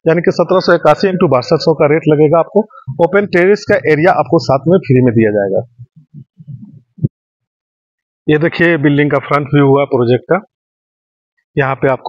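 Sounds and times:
soft low thumps: 0:02.9 - 0:07.2.

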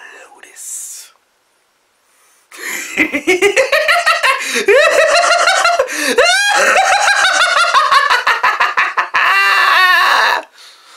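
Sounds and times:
person cackling maniacally: 0:02.6 - 0:10.5.

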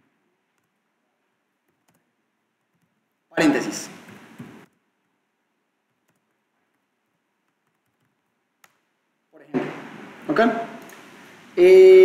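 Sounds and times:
faint keyboard keystrokes: 0:01.6 - 0:03.0, 0:05.9 - 0:08.8.

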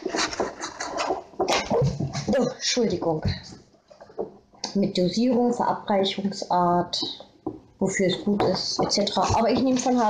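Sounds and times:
paper rustling and crinkling: 0:00.0 - 0:02.3.

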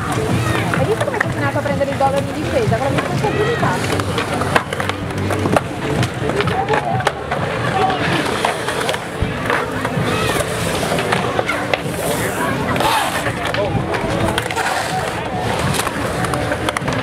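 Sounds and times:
crowd chatter: 0:00.0 - 0:17.0
sharp skateboard clacks: 0:00.0 - 0:17.0
skateboards rolling on concrete: 0:00.0 - 0:17.0.

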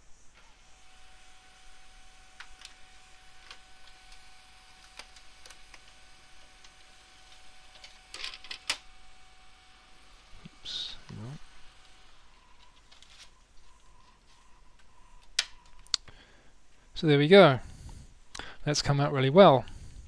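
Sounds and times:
printer whine: 0:00.0 - 0:15.3
paper feed clicks: 0:02.3 - 0:09.1.

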